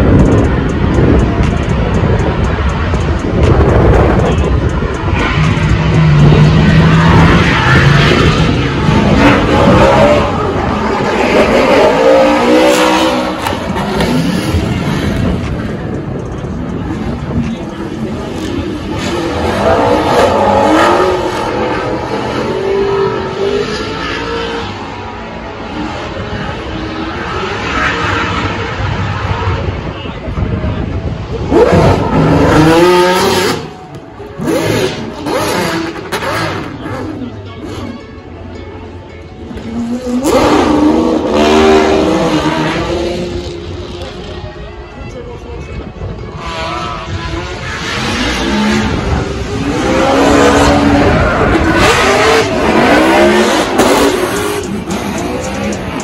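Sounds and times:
car engines revving hard: 0.0s - 37.9s, 38.8s - 44.9s, 45.8s - 56.0s.

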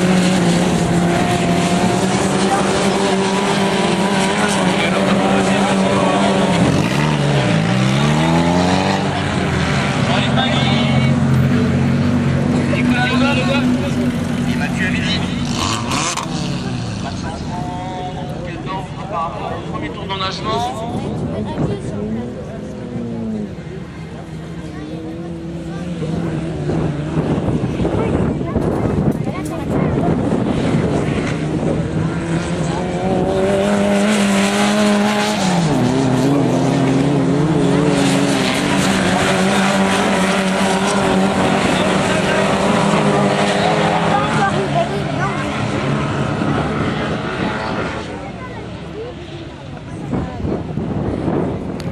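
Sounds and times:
kart engines revving: 0.0s - 51.9s.

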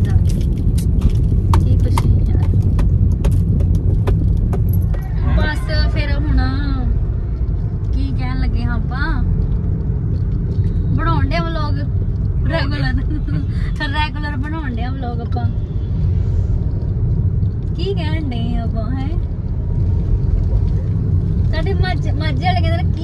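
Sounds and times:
car engine and tyre rumble: 0.0s - 23.0s.

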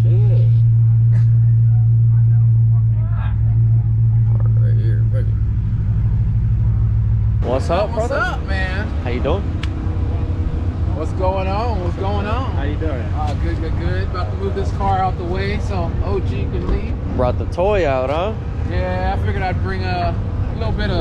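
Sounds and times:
car engine drone in cabin: 0.0s - 21.0s
low engine rumble outdoors: 0.0s - 21.0s
people's voices: 0.0s - 21.0s.

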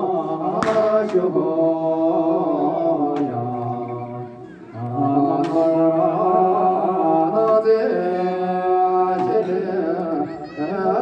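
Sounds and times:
voices chanting in unison: 0.0s - 11.0s.

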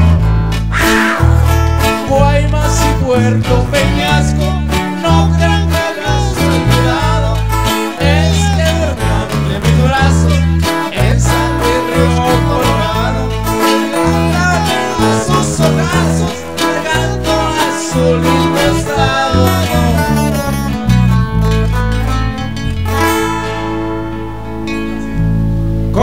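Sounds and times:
acoustic guitars strummed: 0.0s - 26.0s
deep bass line: 0.0s - 26.0s
man singing into a microphone: 1.9s - 20.4s.

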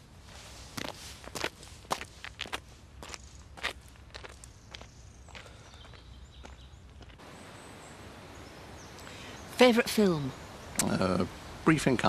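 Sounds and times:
footsteps walking away: 0.3s - 7.3s.

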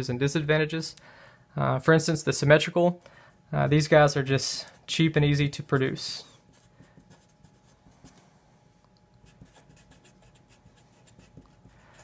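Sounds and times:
marker scratching on paper: 5.7s - 8.2s, 9.2s - 12.0s.

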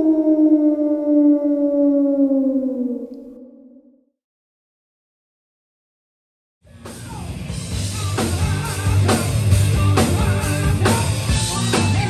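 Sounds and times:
dog howling: 0.0s - 3.9s.

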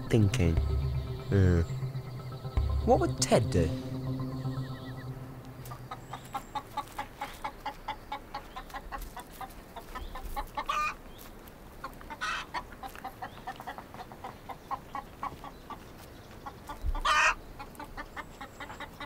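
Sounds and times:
chicken clucking: 5.7s - 11.0s, 11.8s - 19.0s
chicken squawks: 12.1s - 12.6s, 16.4s - 19.0s.

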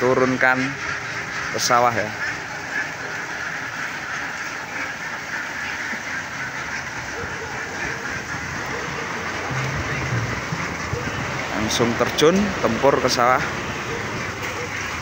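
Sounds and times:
ducks quacking: 0.0s - 15.0s.

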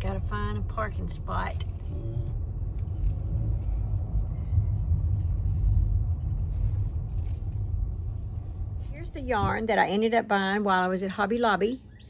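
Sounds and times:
car engine and tyre rumble: 0.0s - 10.8s.

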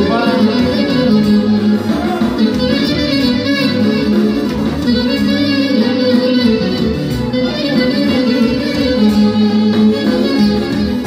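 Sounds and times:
clarinet leading: 0.0s - 11.0s
folk band playing dance music: 0.0s - 11.0s.

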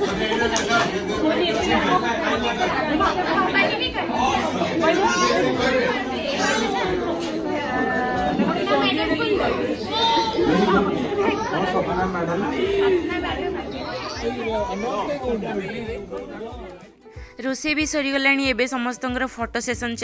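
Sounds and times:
people talking over one another: 0.0s - 17.0s.

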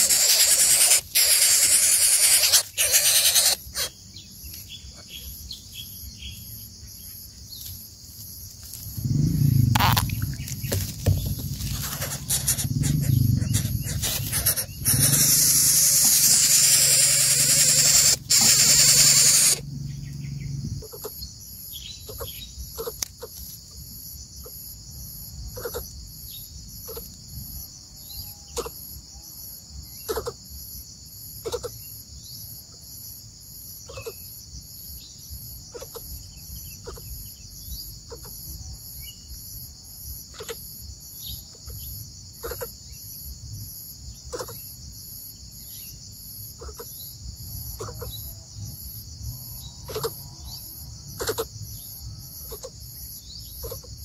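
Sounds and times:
fast-pulsing high insect call: 0.0s - 7.6s, 8.5s - 54.0s
crickets chirring: 0.0s - 54.0s
wings flapping against dry grass: 10.5s - 14.7s.

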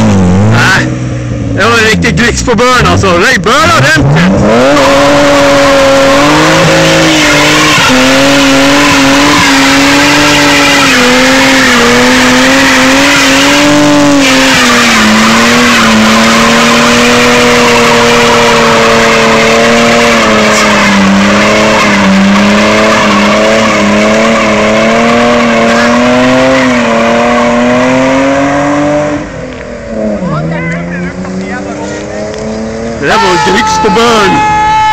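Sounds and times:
car engine at high revs: 0.0s - 34.9s
spinning tyres hissing and squealing: 3.8s - 30.1s.

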